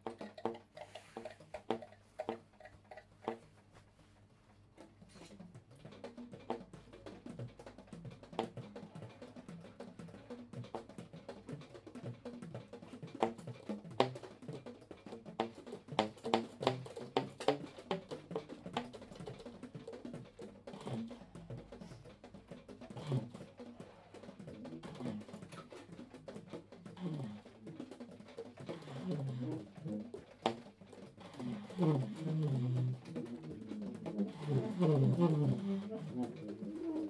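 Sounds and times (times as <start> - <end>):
saxophones played percussively: 31.2 - 37.0.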